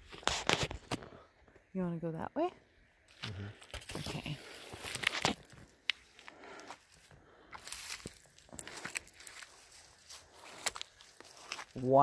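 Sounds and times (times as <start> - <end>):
footsteps through dry brush: 3.1 - 12.0
twigs crackling and snapping: 3.1 - 12.0.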